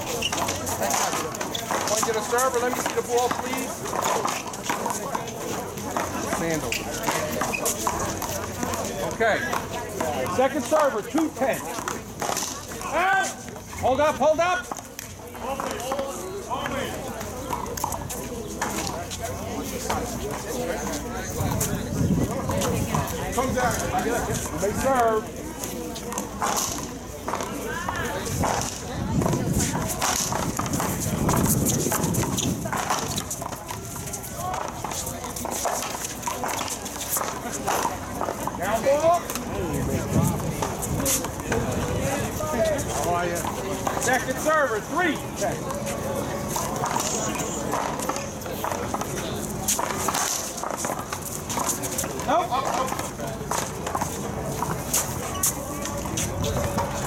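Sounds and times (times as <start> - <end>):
indistinct talk: 0.0 - 57.0.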